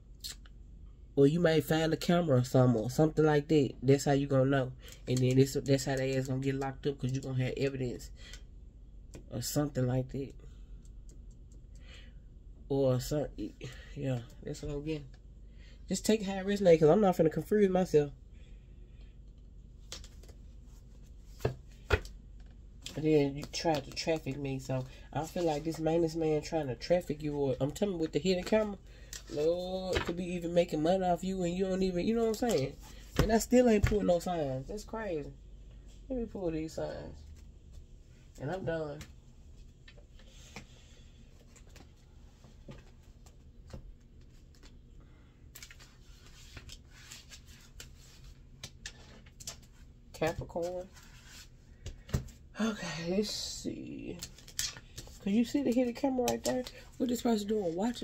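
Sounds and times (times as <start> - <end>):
low steady hum: 0.0 - 58.0
cards shuffling: 19.8 - 22.1, 45.5 - 52.3, 54.1 - 58.0.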